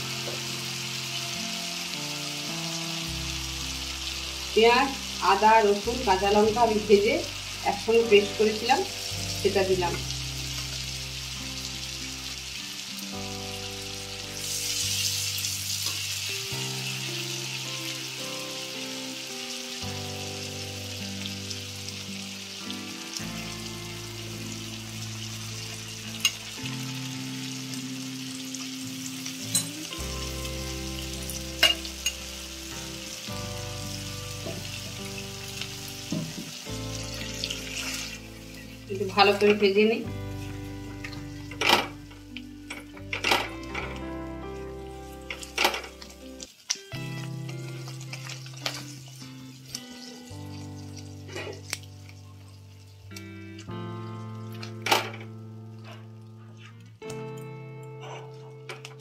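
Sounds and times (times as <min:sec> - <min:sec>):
oil sizzling in a wok: 0:00.0 - 0:57.5
soft background music: 0:00.0 - 0:59.0.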